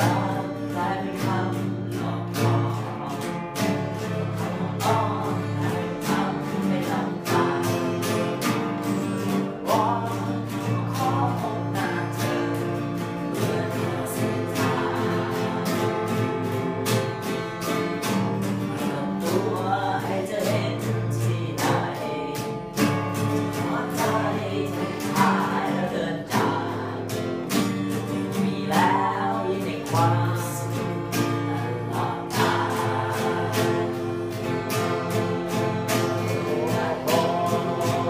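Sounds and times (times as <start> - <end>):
acoustic guitars strumming: 0.0 - 38.0
boy and girl singing: 0.0 - 38.0.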